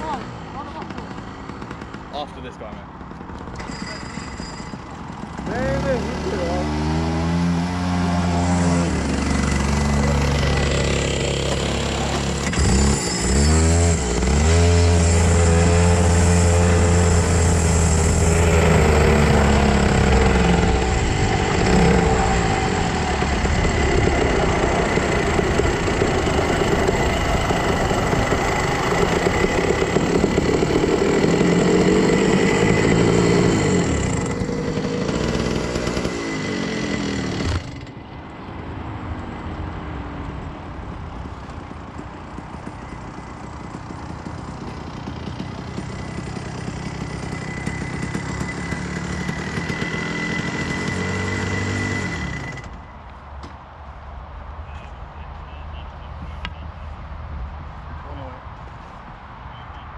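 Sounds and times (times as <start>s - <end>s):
go-kart engine running hard: 0.0s - 38.1s, 41.0s - 52.9s.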